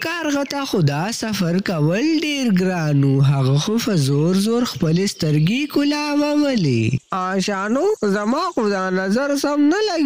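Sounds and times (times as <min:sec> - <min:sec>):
person speaking: 0:00.0 - 0:10.0
faint high-pitched chirring: 0:00.2 - 0:10.0.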